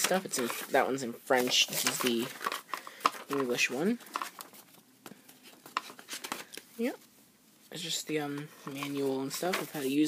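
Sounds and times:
paper rustling: 0.0s - 6.6s, 8.6s - 10.0s.

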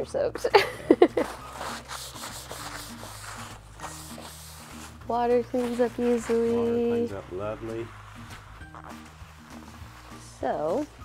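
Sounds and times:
paper towel wiping wet floor: 0.9s - 11.0s.

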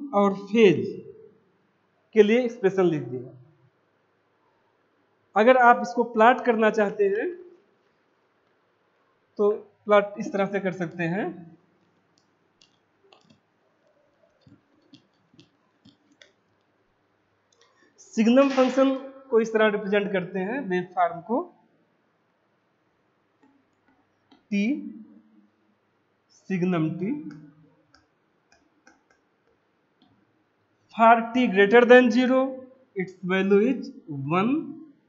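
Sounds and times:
person speaking: 0.0s - 1.1s, 2.2s - 3.4s, 5.4s - 7.4s, 9.4s - 11.4s, 18.0s - 21.5s, 24.5s - 25.0s, 26.4s - 27.4s, 31.0s - 34.7s
faint clicks and taps: 11.8s - 16.8s, 17.5s - 17.9s, 23.4s - 24.5s, 27.2s - 30.3s.

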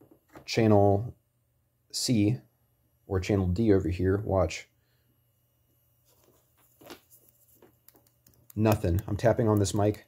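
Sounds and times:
faint taps and clicks: 6.2s - 10.0s.

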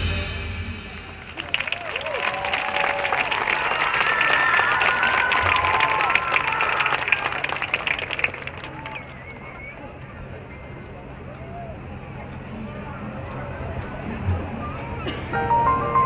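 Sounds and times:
crowd applauding and cheering: 0.8s - 11.8s
crowd shouts and whoops: 1.4s - 7.3s.

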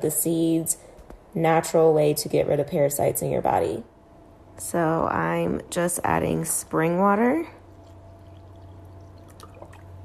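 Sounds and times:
water pouring into bowl: 7.7s - 10.0s.

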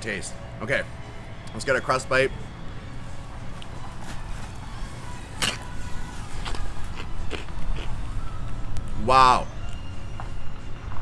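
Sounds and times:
crunchy food bitten: 5.4s - 8.0s
chewing crunches: 5.4s - 8.1s.

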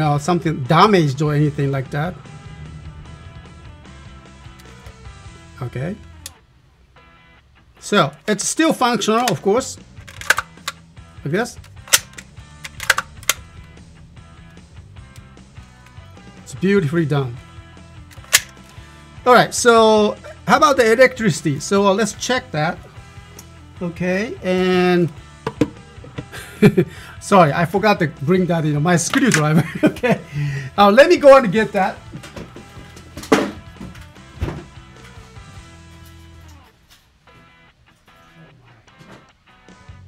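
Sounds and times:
quiet background music: 0.0s - 40.0s
toy blaster plastic click: 11.7s - 13.4s, 18.2s - 18.6s
deep thump: 34.4s - 34.7s.

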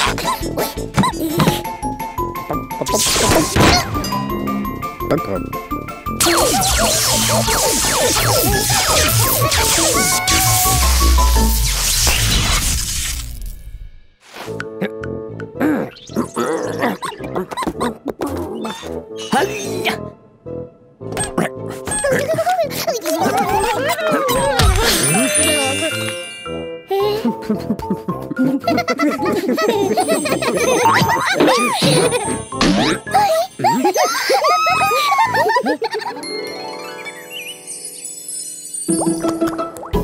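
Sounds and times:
background music: 0.0s - 12.8s, 14.3s - 40.0s
squeaky cartoon voice calls: 8.7s - 10.8s
twinkling chimes: 23.6s - 27.3s, 29.9s - 39.9s.

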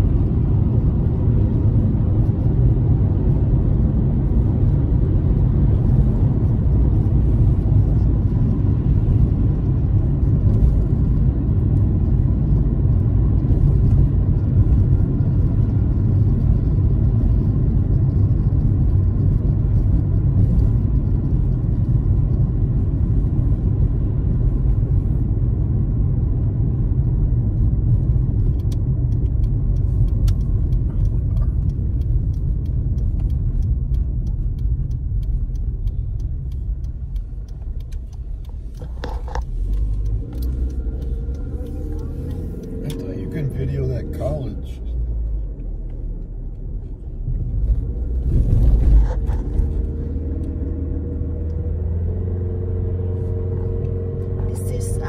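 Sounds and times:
car road rumble inside cabin: 0.0s - 55.0s.

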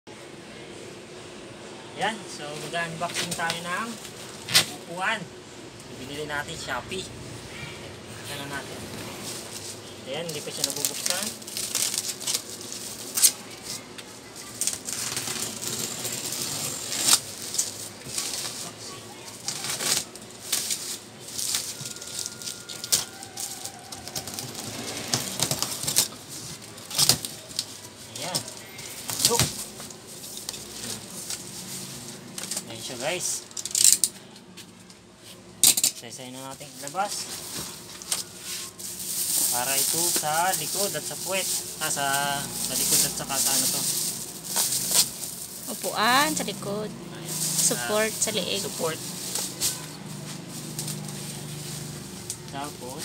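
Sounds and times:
bubble wrap crinkling and tearing: 9.0s - 34.1s, 36.5s - 46.5s, 47.2s - 53.0s.

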